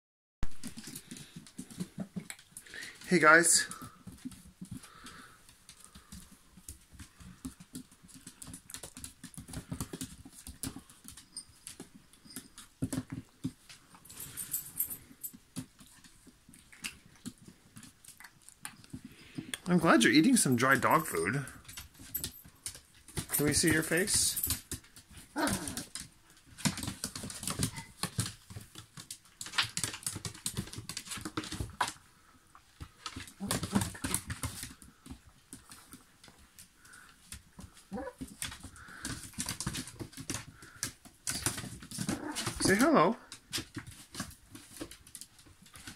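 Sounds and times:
claws clicking on tile floor: 0.5s - 19.7s, 21.5s - 45.9s.

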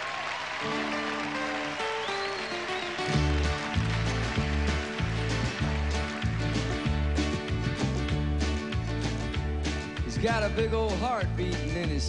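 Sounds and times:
acoustic guitar: 0.6s - 12.0s
bass line: 3.1s - 12.0s
drum beat: 4.3s - 12.0s.

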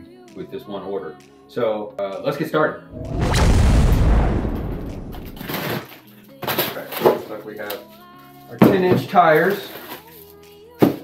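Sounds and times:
deep boom with rumbling tail: 3.0s - 5.6s
smaller hit: 3.0s - 5.8s.

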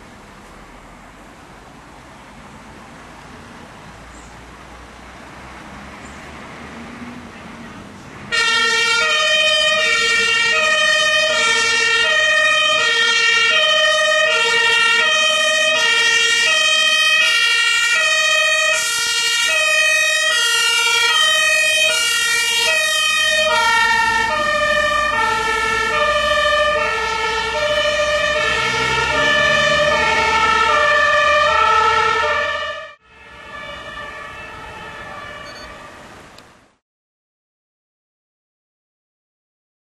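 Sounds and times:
truck engine: 0.0s - 36.7s
two-tone siren: 8.3s - 36.0s.

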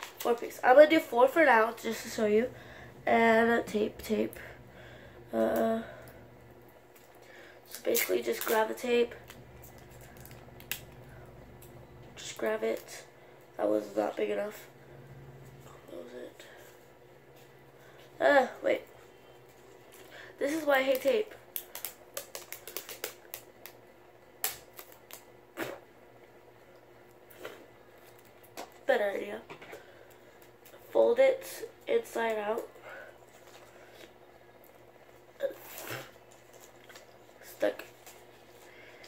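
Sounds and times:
sticky tape rustling and clicking: 7.7s - 11.7s, 20.4s - 23.8s, 24.4s - 25.3s.

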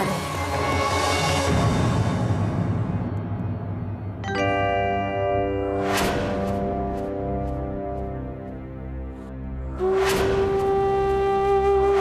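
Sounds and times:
bell-like chord ringing: 4.2s - 7.9s.

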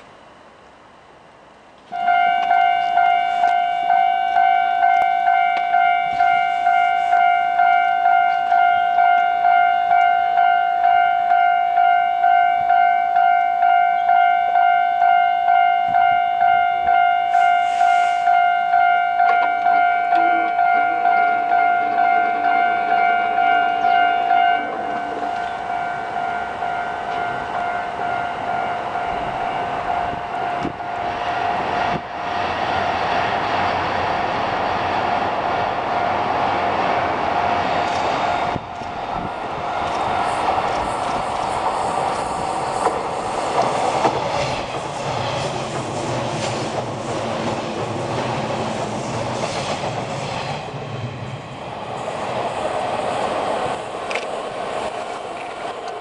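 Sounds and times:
train rumble: 0.0s - 56.0s
level-crossing alarm ringing: 2.0s - 31.6s.

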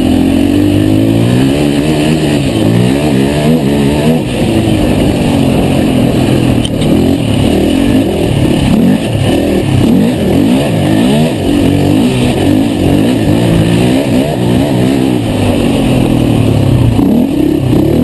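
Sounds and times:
quad engine revving: 0.0s - 18.0s.

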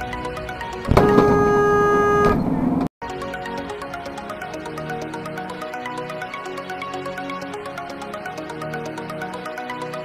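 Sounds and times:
car horn blast: 0.9s - 2.6s.

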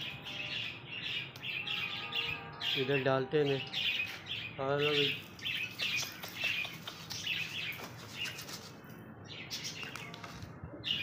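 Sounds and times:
pigeons flapping wings: 5.7s - 8.8s.

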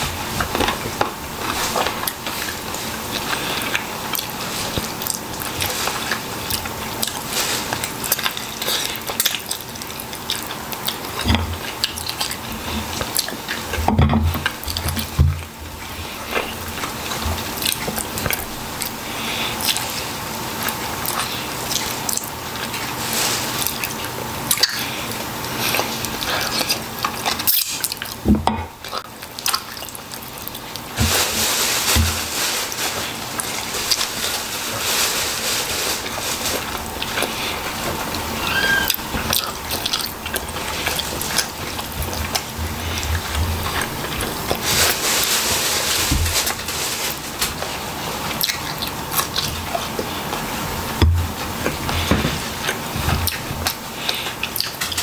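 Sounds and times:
wet chewing and mouth sounds: 0.0s - 55.0s.

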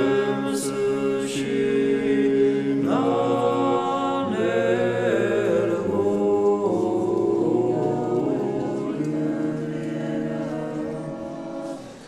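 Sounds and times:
choir chanting unaccompanied: 0.0s - 12.0s.

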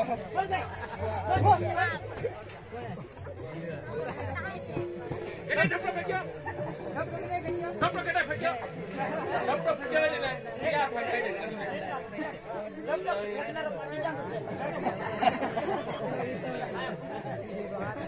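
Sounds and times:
people talking over one another: 0.0s - 18.0s.

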